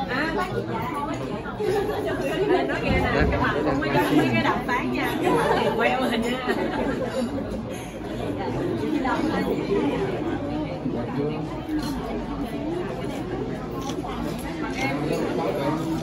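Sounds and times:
chatter of many people: 0.0s - 16.0s.

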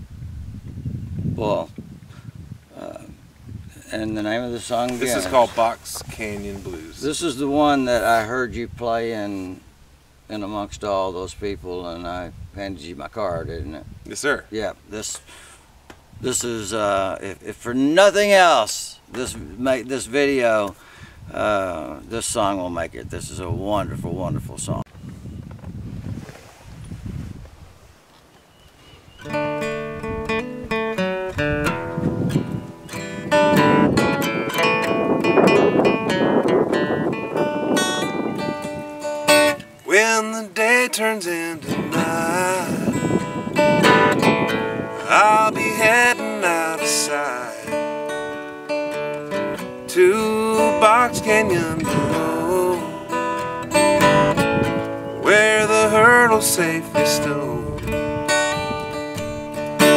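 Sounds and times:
acoustic guitar playing: 3.8s - 8.3s, 29.2s - 59.9s.

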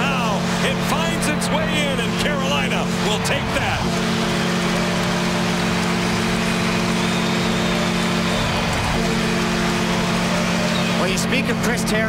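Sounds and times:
crowd cheering: 0.0s - 12.0s
goal horn blasts: 1.6s - 11.9s.

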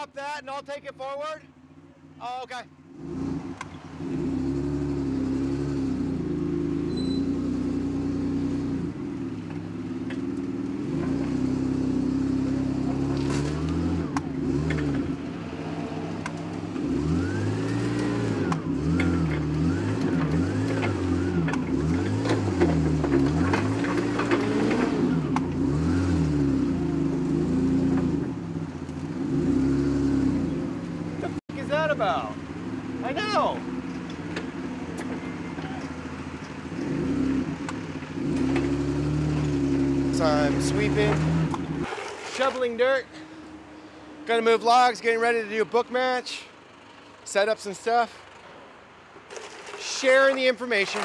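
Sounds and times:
forklift engine revving: 2.9s - 9.4s, 10.5s - 42.8s.

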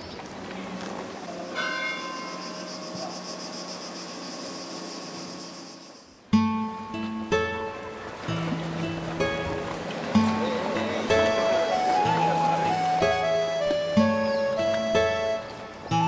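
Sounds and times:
church bell ringing: 1.5s - 2.7s.

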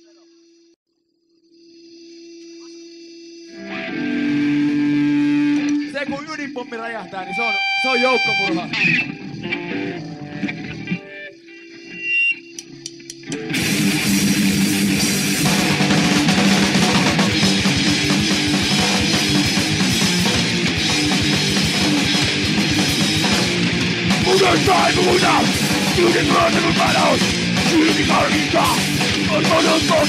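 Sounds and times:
guitar chords with effects: 3.5s - 30.0s
punk band with distorted guitar: 3.6s - 30.0s
voice-like sounds: 24.2s - 30.0s.

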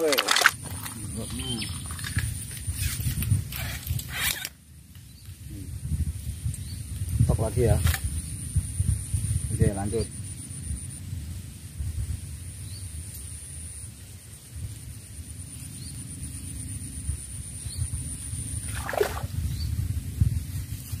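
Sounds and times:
faint chirps: 1.0s - 2.1s.

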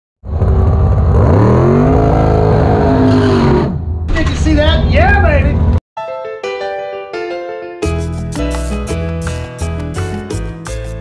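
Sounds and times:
car engine revving: 0.3s - 4.1s
person shouting excitedly: 4.5s - 5.6s.

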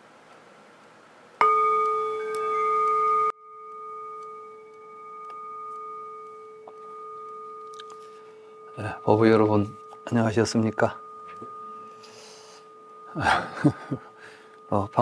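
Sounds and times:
bowl bell ringing: 1.4s - 15.0s.

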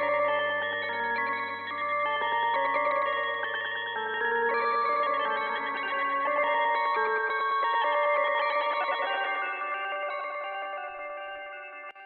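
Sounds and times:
electric guitar with echo: 0.0s - 12.0s.

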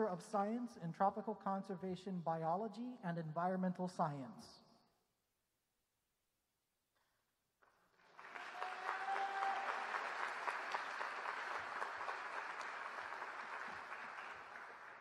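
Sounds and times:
audience applauding: 7.9s - 15.0s.

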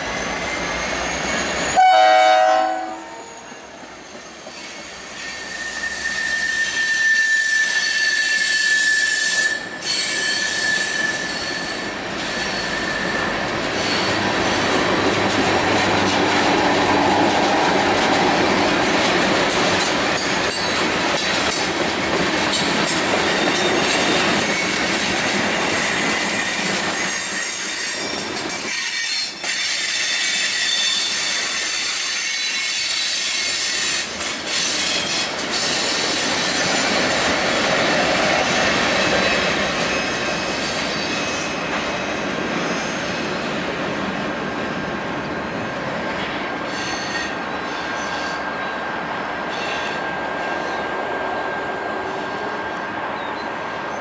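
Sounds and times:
train wheel squeal: 0.0s - 14.9s, 20.2s - 21.6s, 22.5s - 43.5s, 45.3s - 54.0s
locomotive horn: 1.7s - 3.4s
train cars clattering on rails: 9.4s - 44.8s.

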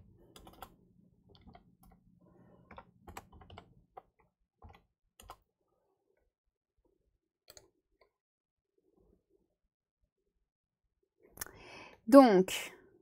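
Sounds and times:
keyboard keys tapping: 0.3s - 0.7s, 2.7s - 5.4s.

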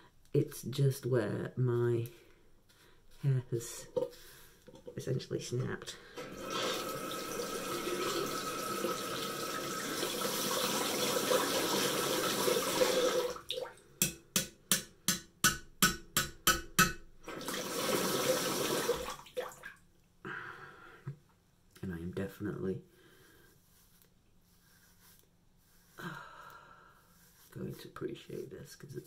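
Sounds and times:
tap water running into sink: 6.2s - 13.7s, 17.3s - 19.6s.

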